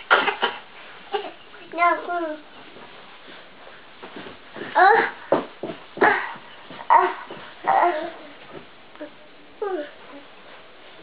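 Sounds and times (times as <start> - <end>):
toddler yelping: 6.0 - 8.3.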